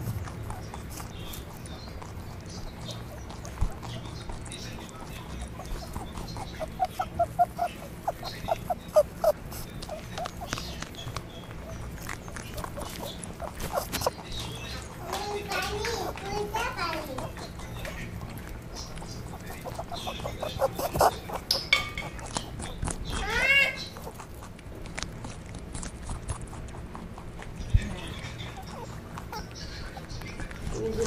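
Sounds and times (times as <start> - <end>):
rabbits chewing grass: 0.0 - 31.0.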